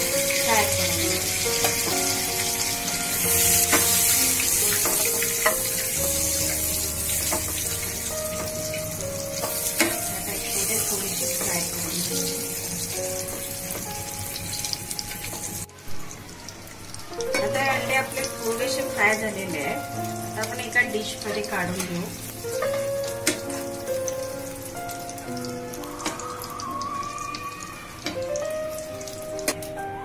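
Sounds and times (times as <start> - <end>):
eggs sizzling in oil: 0.0 - 30.0
slow background music: 0.0 - 30.0.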